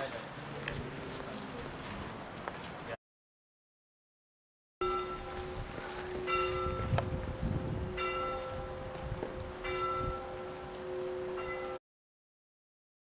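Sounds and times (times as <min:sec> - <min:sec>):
church bell ringing: 0:04.8 - 0:11.8
higher bell tone: 0:04.8 - 0:11.8.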